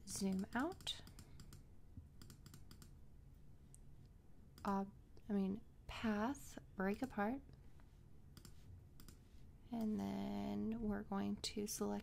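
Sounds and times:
computer mouse clicks: 0.1s - 1.6s, 2.2s - 3.0s, 4.5s - 4.8s, 6.9s - 7.2s, 8.3s - 9.2s.

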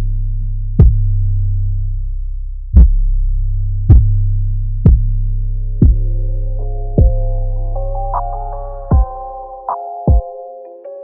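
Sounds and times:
sustained sub-bass note: 0.0s - 9.7s
kick drum hits: 0.8s - 1.1s, 2.8s - 3.0s, 3.9s - 4.2s, 5.8s - 6.1s, 7.0s - 7.3s, 8.9s - 9.2s, 10.1s - 10.3s.

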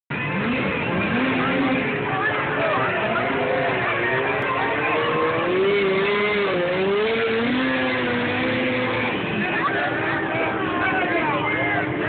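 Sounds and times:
snowmobile engine whining: 0.1s - 12.0s.

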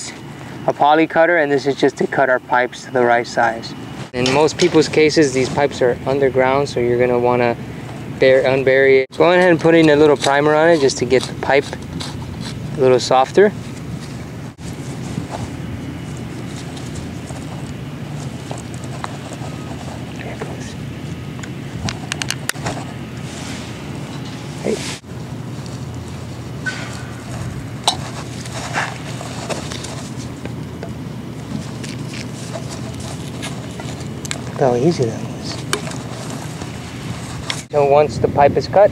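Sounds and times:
low hum: 11.8s - 38.4s.

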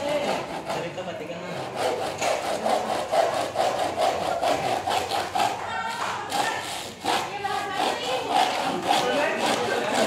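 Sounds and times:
handsaw cutting wood: 0.0s - 10.0s.

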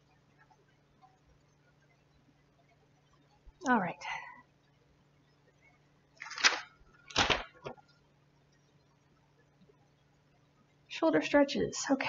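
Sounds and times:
paper rustling: 6.2s - 7.8s.

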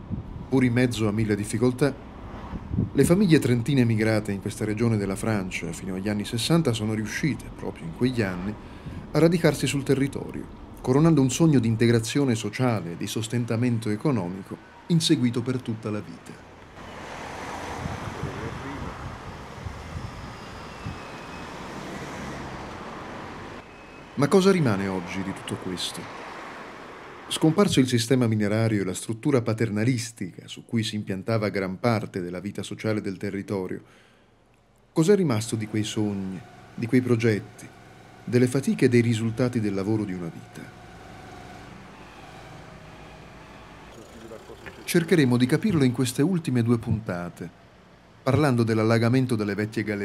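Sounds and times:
low vehicle engine hum: 0.0s - 27.4s, 35.0s - 50.0s
road traffic noise: 0.0s - 31.6s, 32.2s - 50.0s.

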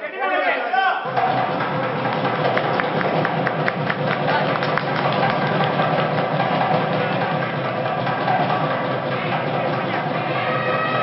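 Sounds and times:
crowd noise: 0.0s - 11.0s
fast drumming: 1.0s - 11.0s.

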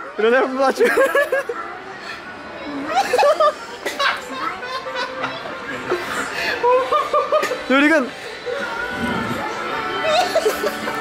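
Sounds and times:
people chattering and laughing: 0.0s - 11.0s.

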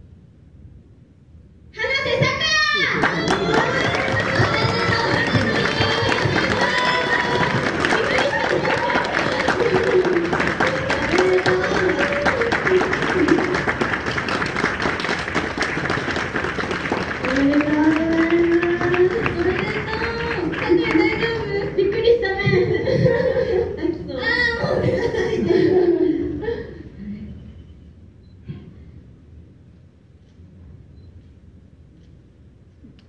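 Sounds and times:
voices calling out: 2.0s - 13.5s
audience clapping: 2.8s - 22.2s.

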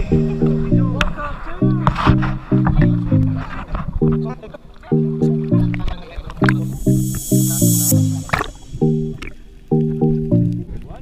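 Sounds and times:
background music with low chords: 0.0s - 11.0s.

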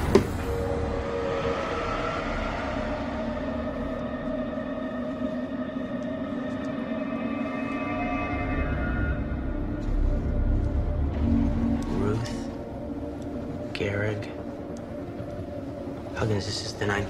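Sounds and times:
eerie suspense drone: 0.0s - 17.0s.

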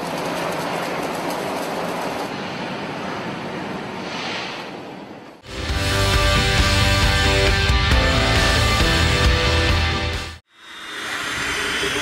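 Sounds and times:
conveyor belt carrying rock: 0.0s - 3.9s.

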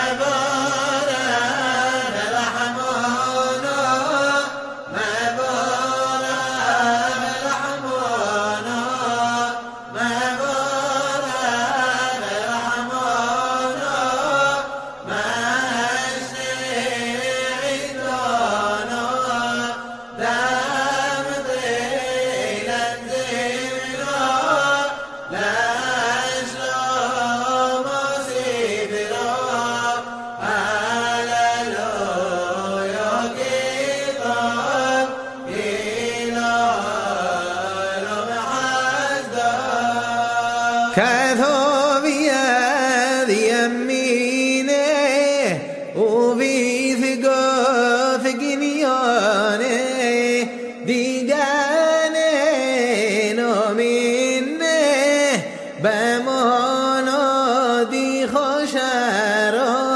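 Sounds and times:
person chanting: 0.0s - 59.9s.

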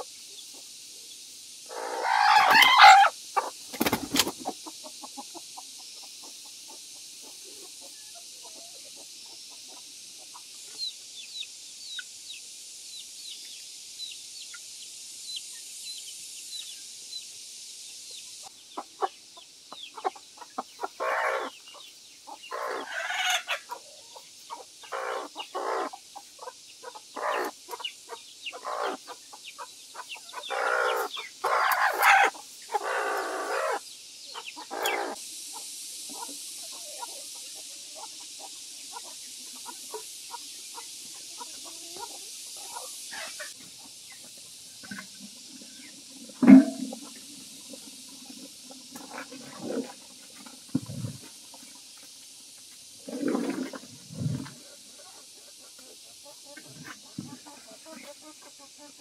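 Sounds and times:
hen clucking and squawking: 1.7s - 5.4s, 19.9s - 21.5s, 22.3s - 23.8s, 24.5s - 29.2s, 30.0s - 33.8s, 34.6s - 35.2s.

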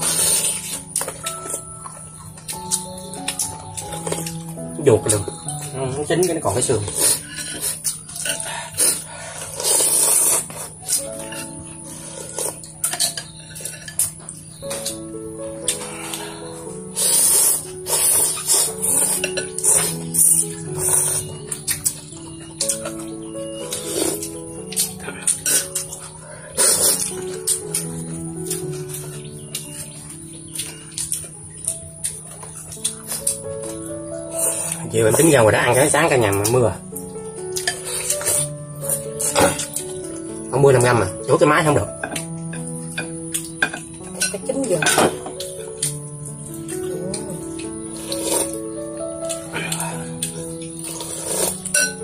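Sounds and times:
noodle soup slurping: 0.0s - 1.2s, 6.9s - 12.8s, 15.7s - 21.5s, 23.7s - 24.4s, 25.2s - 27.8s, 48.0s - 48.6s, 49.4s - 51.9s
background music stepping melody: 0.0s - 52.0s.

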